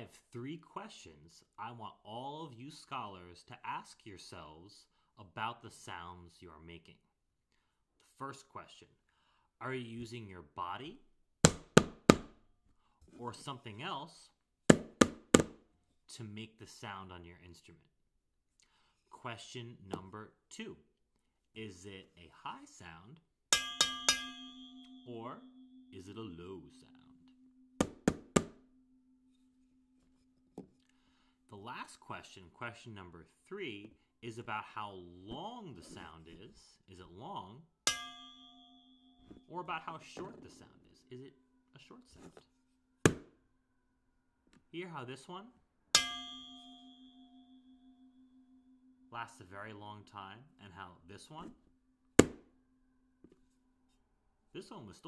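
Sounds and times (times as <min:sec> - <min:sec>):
wooden spoon knocking on bowls: 0:23.6 - 0:25.6, 0:27.8 - 0:28.6
low ringing tone: 0:23.6 - 0:30.9, 0:37.9 - 0:39.6, 0:46.0 - 0:51.1
wooden spoon knocking plastic container: 0:27.8 - 0:28.6.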